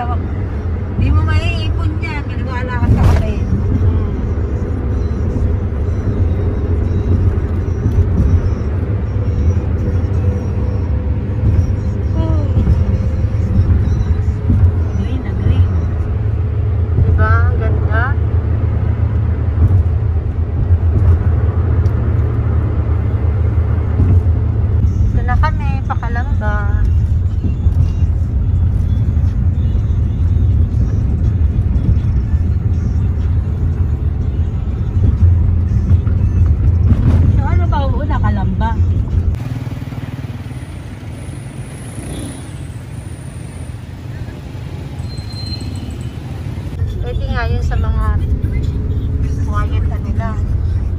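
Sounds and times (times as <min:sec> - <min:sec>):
road and engine rumble in car: 0:00.0 - 0:50.9.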